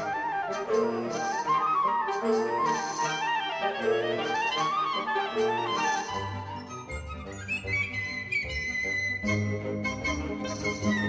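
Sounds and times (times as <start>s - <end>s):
wind ensemble playing: 0.0s - 6.9s.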